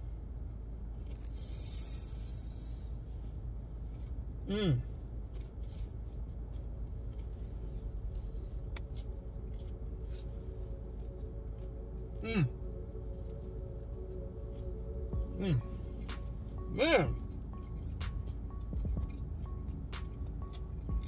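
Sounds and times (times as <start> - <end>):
low hum inside car: 0.0 - 21.0
person humming mmm: 4.5 - 4.9, 12.2 - 12.8, 15.1 - 17.4
crunching egg roll chewing: 4.9 - 21.0.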